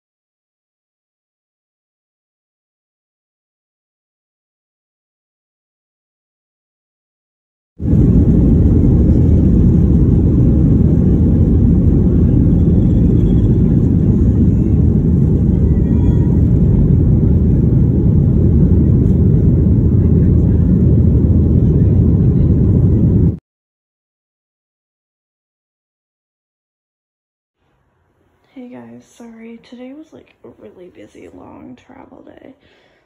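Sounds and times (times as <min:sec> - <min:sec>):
jet engines roaring at takeoff: 0:07.8 - 0:23.4.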